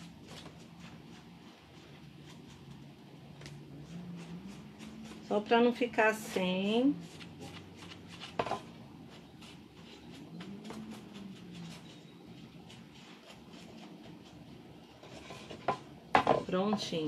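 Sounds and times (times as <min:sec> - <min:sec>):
sponge dabbing and rubbing: 0:00.0 - 0:11.8.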